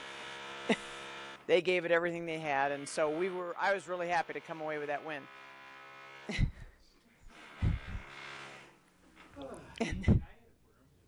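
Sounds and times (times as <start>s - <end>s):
power tool humming on sheet metal: 0.0s - 8.9s
heavy low thud: 7.6s - 8.0s.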